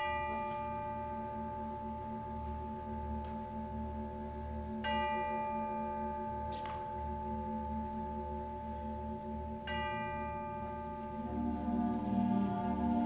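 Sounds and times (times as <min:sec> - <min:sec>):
bell ringing: 0:00.0 - 0:03.2, 0:04.8 - 0:11.5
concert band sustained chords: 0:00.0 - 0:13.0.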